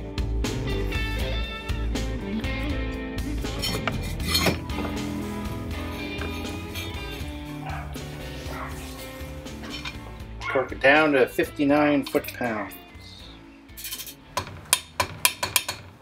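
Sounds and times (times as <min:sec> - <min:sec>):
soft background music: 0:00.0 - 0:16.0
metal tools clinking: 0:03.6 - 0:04.6, 0:09.6 - 0:10.0, 0:13.8 - 0:14.2.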